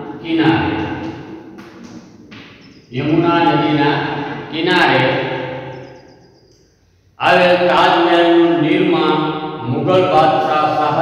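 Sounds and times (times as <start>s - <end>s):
man speaking with echo: 0.0s - 1.3s, 2.9s - 5.7s, 7.2s - 11.0s.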